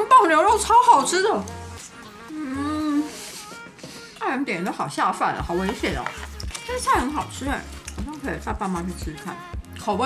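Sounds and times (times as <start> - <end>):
soft background music: 0.0 - 10.0
woman humming with food in mouth: 2.1 - 3.2.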